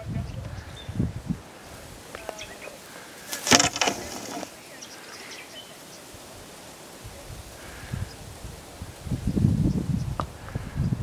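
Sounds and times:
outdoor bush ambience: 0.0s - 11.0s.

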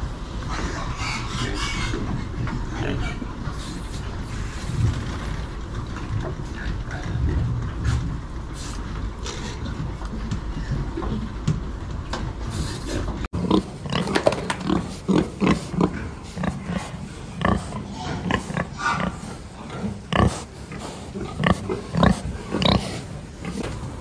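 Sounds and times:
pigs grunting: 0.4s - 11.4s, 12.4s - 24.0s.

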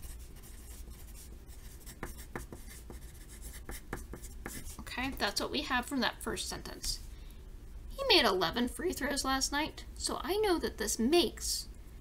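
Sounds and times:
pencil scratching on paper: 0.0s - 4.9s.

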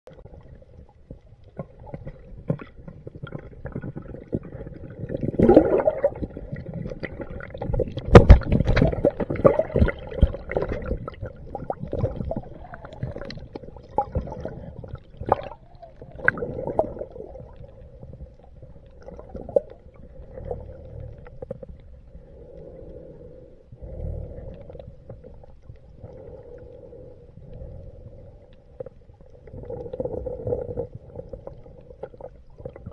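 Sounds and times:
water swirling and gurgling underwater: 0.1s - 32.9s.

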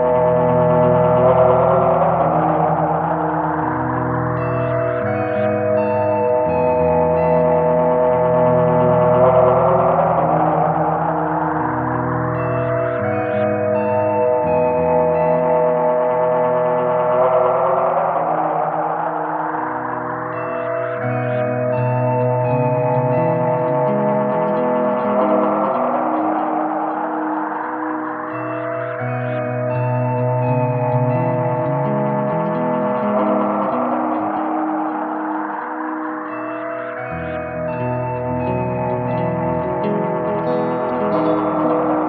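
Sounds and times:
layered ambient tape loop: 0.0s - 42.0s.

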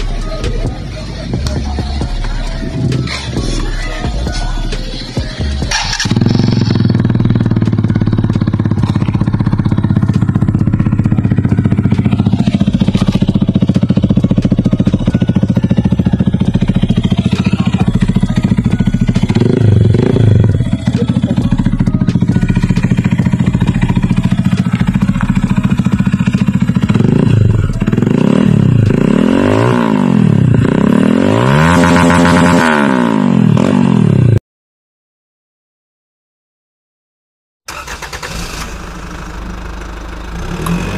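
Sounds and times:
motorcycle engine idling and revving: 0.0s - 34.4s, 37.7s - 40.9s.

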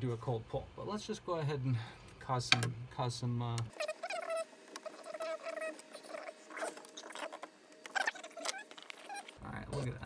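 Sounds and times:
filament squeaking in extruder: 3.7s - 9.4s.

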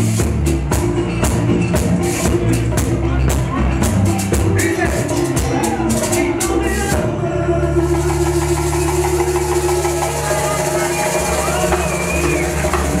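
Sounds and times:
latin percussion: 0.0s - 13.0s.

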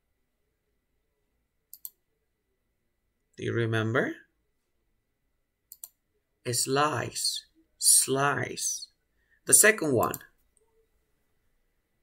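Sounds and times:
faint click: 1.7s - 2.0s
person speaking: 6.4s - 10.8s.

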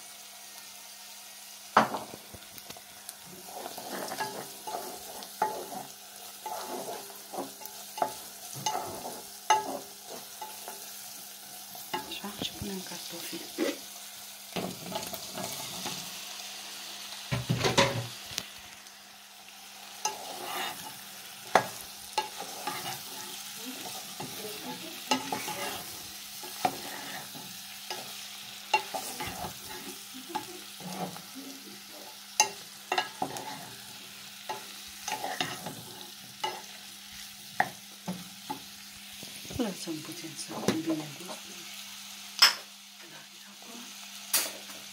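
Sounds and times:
onions sizzling in oil: 0.0s - 44.9s
wooden spoon scraping pot: 3.3s - 10.8s, 20.0s - 30.0s, 33.0s - 33.8s, 34.5s - 36.7s
potatoes clattering into pan: 17.3s - 18.2s.

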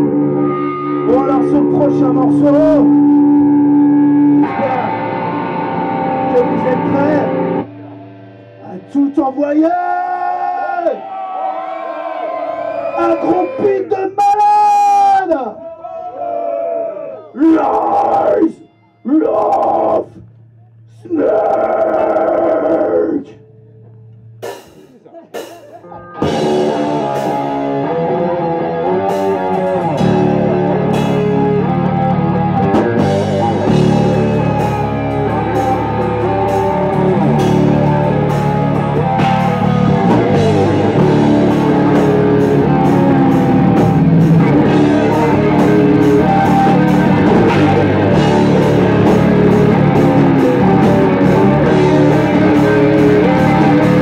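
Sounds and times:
electric guitar riff: 0.0s - 10.8s, 25.8s - 54.0s
loud shout: 9.6s - 20.2s, 21.0s - 23.4s
fast loud drums and bass: 26.2s - 27.7s, 29.2s - 54.0s.

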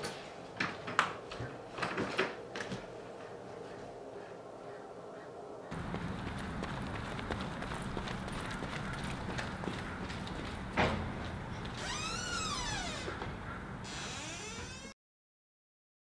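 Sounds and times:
hurried footsteps on concrete: 5.7s - 11.8s
door squeaking open: 11.7s - 15.0s.

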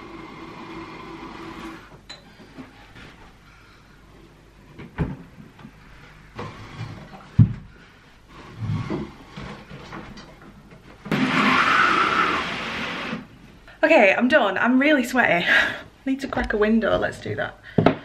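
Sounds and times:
furniture scraping rumble: 6.3s - 7.7s, 8.3s - 10.2s.

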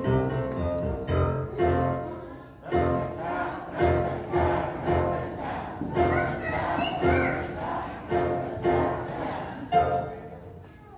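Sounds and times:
piano chords: 0.0s - 10.6s
children's choir singing: 1.0s - 10.6s.

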